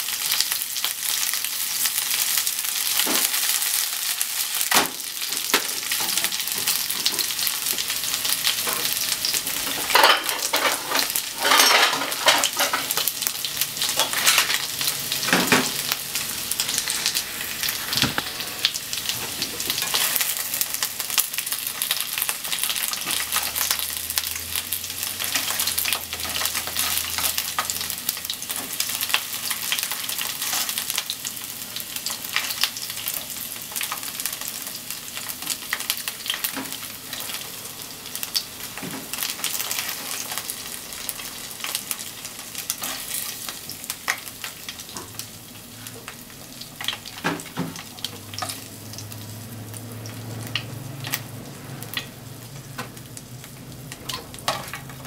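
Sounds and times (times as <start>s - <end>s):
chicken sizzling in oil: 0.0s - 55.0s.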